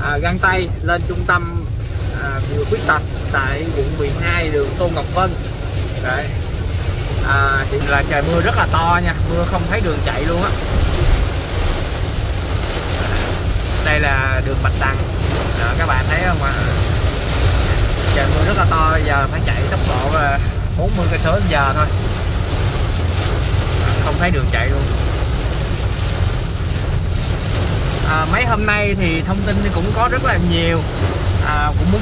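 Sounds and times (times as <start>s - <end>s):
car rumbling on wet road: 0.0s - 32.0s
heavy rain on car roof: 0.0s - 32.0s.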